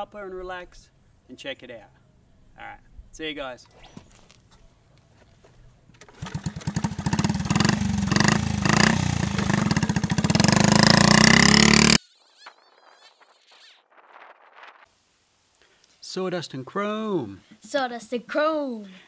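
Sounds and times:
small motorbike engine revving: 0:06.0 - 0:12.2.

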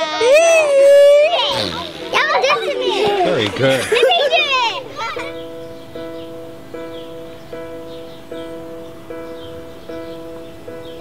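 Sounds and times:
long held shout: 0:00.0 - 0:01.6
children shouting and laughing: 0:00.0 - 0:05.7.

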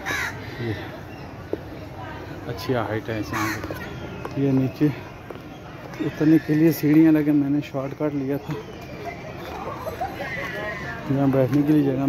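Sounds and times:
crow cawing: 0:00.0 - 0:01.0, 0:03.2 - 0:03.8.

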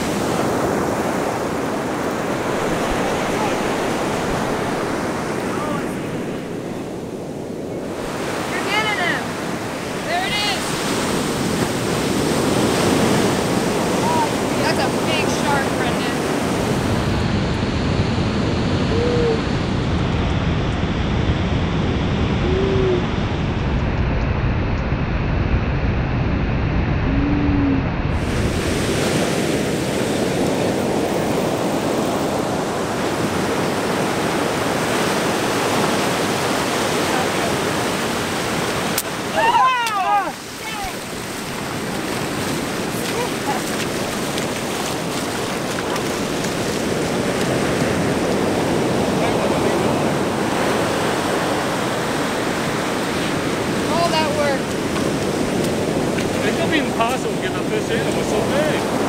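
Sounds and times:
ocean surf breaking: 0:00.0 - 0:59.0
wind on microphone: 0:00.0 - 0:59.0.

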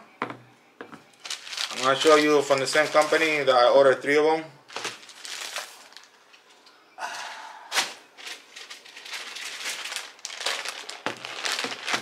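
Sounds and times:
plastic bag crinkling: 0:01.2 - 0:04.0, 0:04.7 - 0:06.5, 0:07.8 - 0:12.0.

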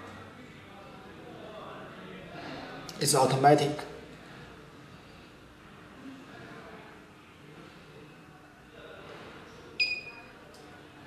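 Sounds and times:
short electronic beep: 0:09.8 - 0:10.2.

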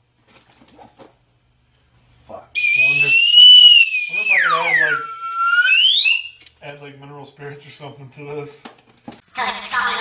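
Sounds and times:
high whistling tone gliding down: 0:02.6 - 0:06.3.

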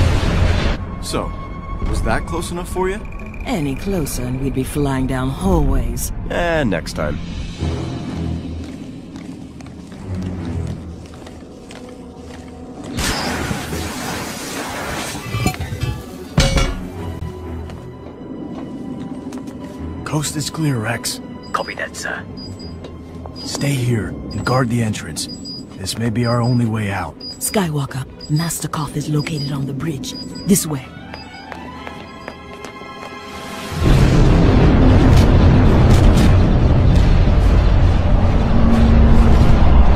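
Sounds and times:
background music: 0:00.0 - 0:14.4, 0:15.2 - 0:39.9
loud metallic clang: 0:16.4 - 0:17.0
deep rumble of explosions: 0:33.8 - 0:39.9.

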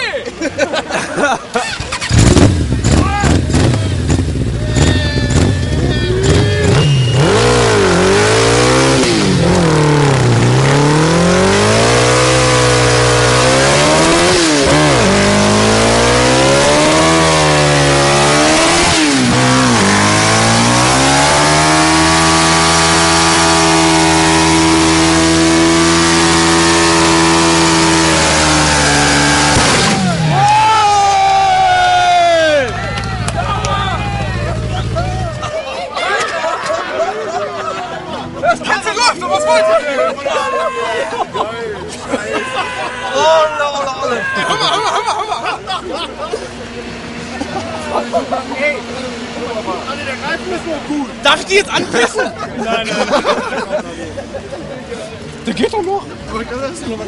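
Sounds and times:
sharp engine cracks: 0:01.6 - 0:04.2
motorcycle engine revving: 0:01.6 - 0:30.8, 0:32.9 - 0:35.5.

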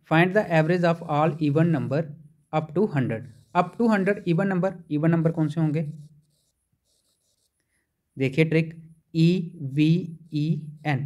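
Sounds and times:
stylus scratching on tablet screen: 0:00.0 - 0:11.0.

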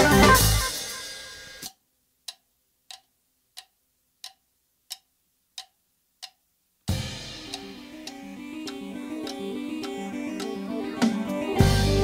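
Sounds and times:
band music: 0:00.0 - 0:01.6, 0:06.9 - 0:12.0
sharp ticks: 0:01.6 - 0:06.4, 0:07.4 - 0:11.3.

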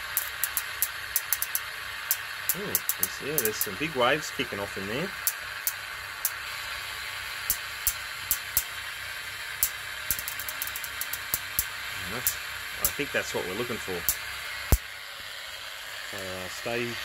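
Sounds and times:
high-voltage sparks snapping: 0:00.0 - 0:03.9, 0:04.9 - 0:06.4, 0:07.4 - 0:08.8, 0:09.6 - 0:14.9
steady hiss: 0:00.0 - 0:17.0.

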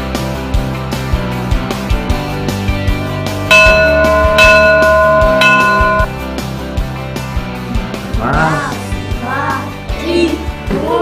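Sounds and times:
small bell ringing: 0:03.2 - 0:06.1.

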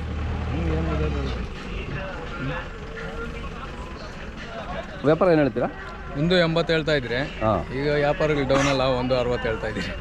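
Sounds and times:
people talking: 0:00.5 - 0:10.0.

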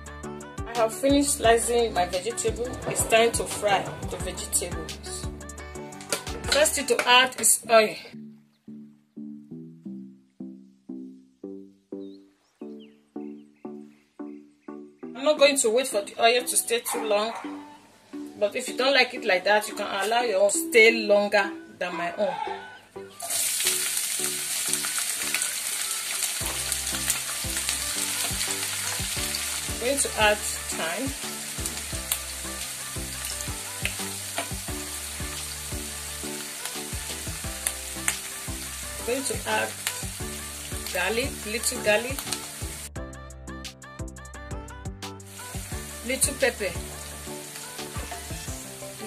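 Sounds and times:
background music with beat: 0:00.0 - 0:07.5, 0:26.4 - 0:49.0
vegetables sizzling in hot oil: 0:23.2 - 0:42.9, 0:45.3 - 0:49.0.

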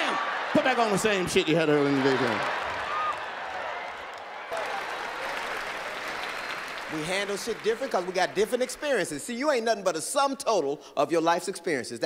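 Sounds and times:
audience applauding: 0:00.0 - 0:09.5.

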